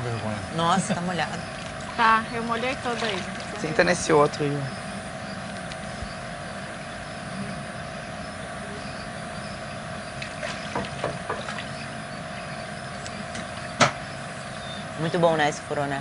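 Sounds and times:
background hum and hiss: 0.0 - 16.0.

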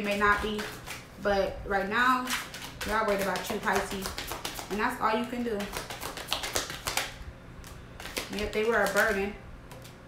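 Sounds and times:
cards being shuffled: 0.0 - 1.1, 2.2 - 4.8, 5.6 - 10.0.

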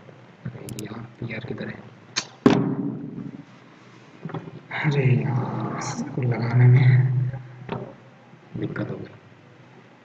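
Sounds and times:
loud thump: 2.4 - 3.3.

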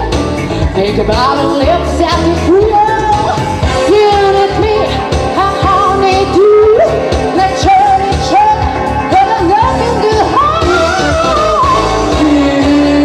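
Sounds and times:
pop-soul accompaniment: 0.0 - 13.0
woman singing into microphone: 0.0 - 13.0.

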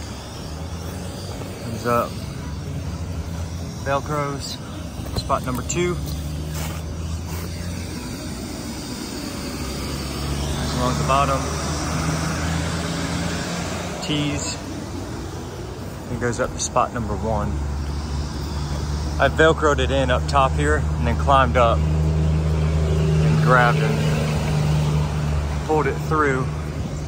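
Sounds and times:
inflator blower humming: 0.0 - 27.0.

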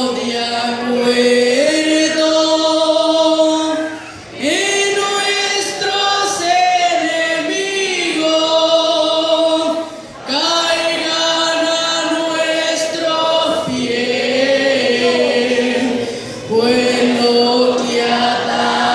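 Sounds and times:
congregation singing a hymn: 0.0 - 18.9.

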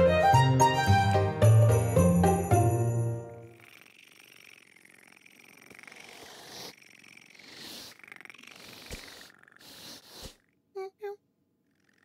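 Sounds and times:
cartoon cat purring: 3.4 - 12.0.

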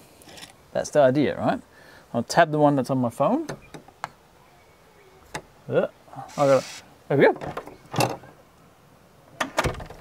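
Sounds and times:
lock handle clunk: 3.4 - 4.0, 7.3 - 8.3.

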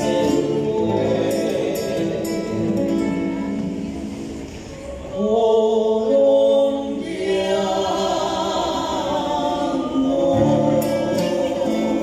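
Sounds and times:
men singing in harmony: 0.0 - 3.0, 5.2 - 12.0
acoustic guitars: 0.0 - 12.0.

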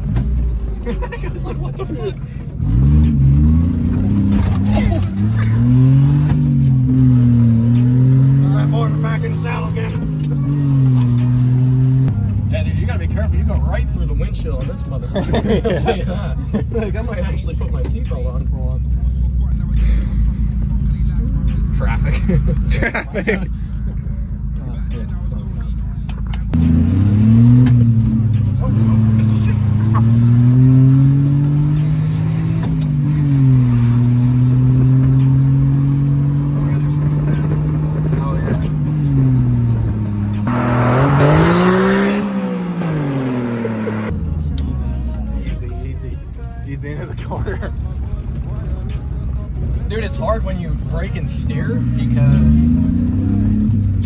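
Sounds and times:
small truck engine revving: 2.4 - 13.7, 26.5 - 44.6, 50.8 - 54.0.

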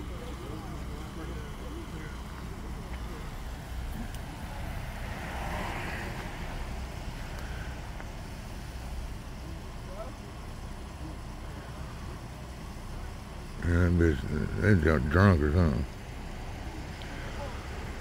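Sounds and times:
faint distant voices: 0.0 - 18.0
vehicles idling: 0.0 - 18.0.

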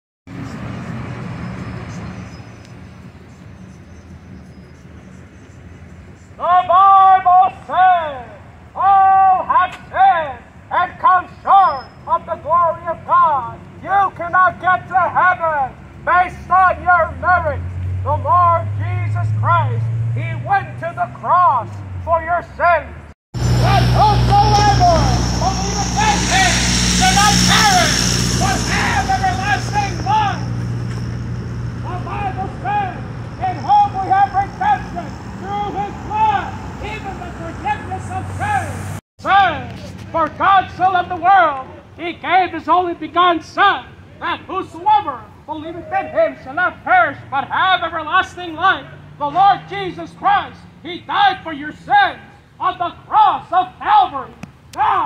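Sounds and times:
truck engine drone: 0.3 - 6.3, 12.0 - 42.0
steady traffic hum: 0.3 - 55.0
man preaching loudly: 6.4 - 22.9, 23.5 - 30.5, 31.8 - 55.0
car passing close: 15.7 - 22.1, 23.4 - 39.0
high whine: 23.4 - 37.2.

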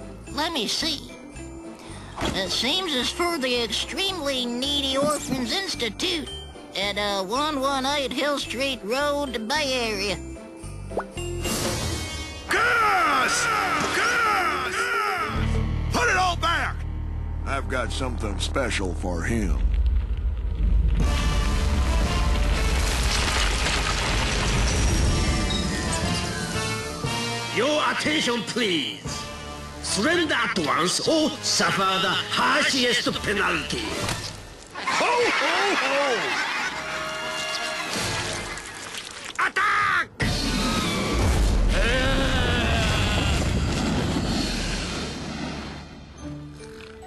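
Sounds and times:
metal machine breaking through ice: 22.5 - 25.9
cartoon monster roaring: 40.2 - 43.8.

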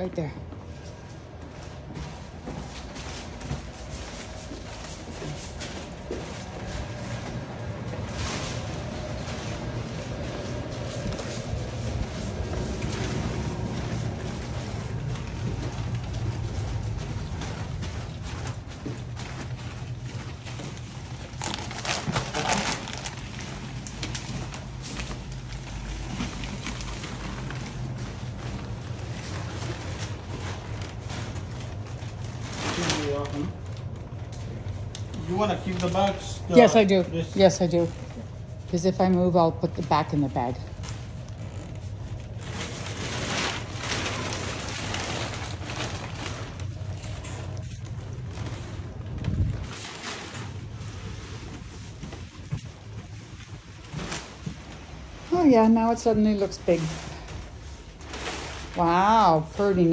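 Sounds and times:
plastic-wrapped mattress rustling: 0.0 - 59.9.

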